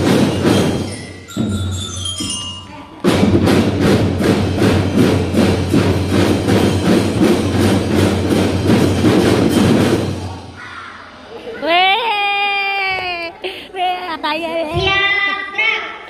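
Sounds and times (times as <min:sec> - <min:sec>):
drum band playing: 0:00.0 - 0:10.6.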